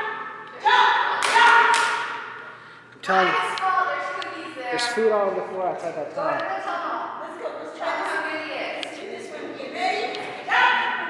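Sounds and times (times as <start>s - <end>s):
sharp hand claps in a hall: 1.2s - 2.3s.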